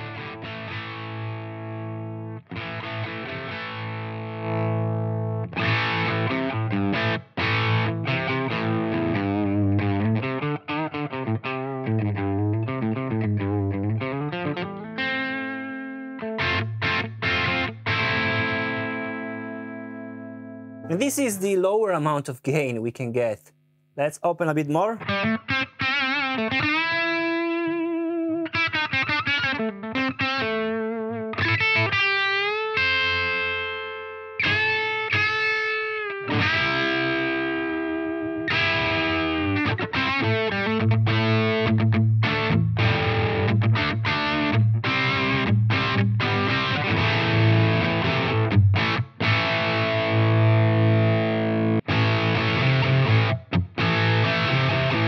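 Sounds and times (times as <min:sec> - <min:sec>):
distorted electric guitar: 0:00.0 - 0:21.2, 0:25.0 - 0:55.0.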